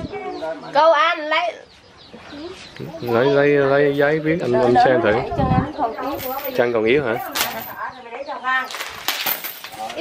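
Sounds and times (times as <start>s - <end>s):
metal chain clinking on concrete: 6.0s - 7.9s, 8.6s - 10.0s.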